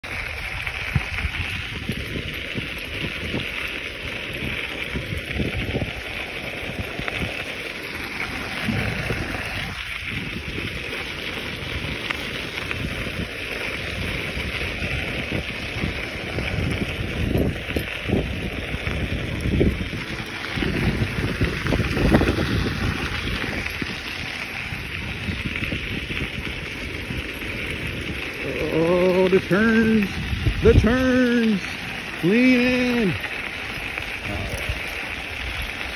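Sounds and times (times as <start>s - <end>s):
wheels rolling over gravel: 0.0s - 35.9s
wind on microphone: 0.0s - 35.9s.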